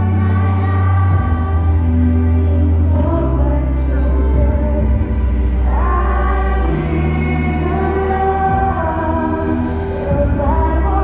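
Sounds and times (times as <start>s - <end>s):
woman singing into microphone: 0.0s - 11.0s.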